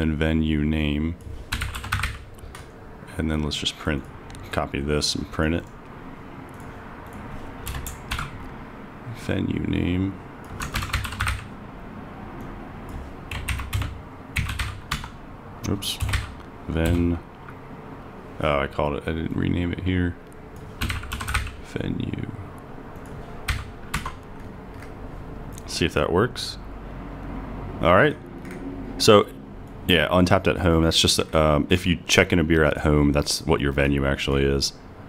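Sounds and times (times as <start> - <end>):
keyboard typing: 1.2 - 2.7, 6.5 - 8.4, 10.4 - 11.6, 12.4 - 17.1, 20.6 - 21.6, 22.9 - 25.0.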